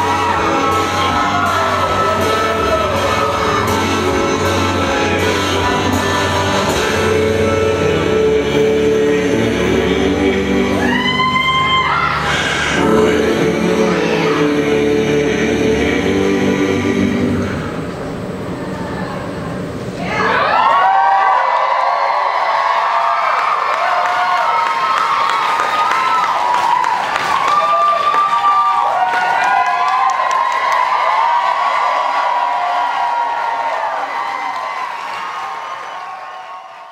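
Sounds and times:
audience cheering and whooping: 0.0s - 6.8s, 10.7s - 12.8s, 20.0s - 36.9s
music: 0.0s - 18.1s
audience clapping: 22.5s - 36.9s.

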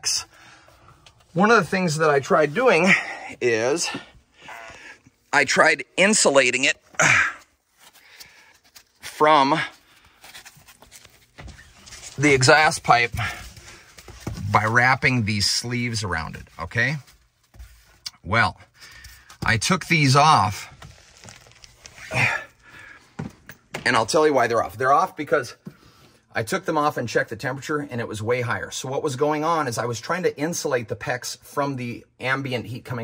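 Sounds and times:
foam sleeve rustling and scraping: 20.4s - 22.2s.

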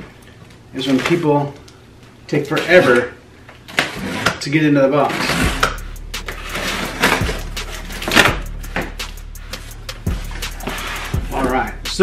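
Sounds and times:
music with steady low bass: 5.4s - 12.0s.

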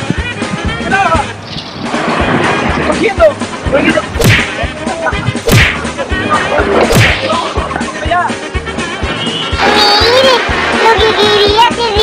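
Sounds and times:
background music with low beat: 0.0s - 1.4s, 2.2s - 9.7s
whip cracks: 4.2s - 4.6s, 5.4s - 5.9s, 6.8s - 7.3s.

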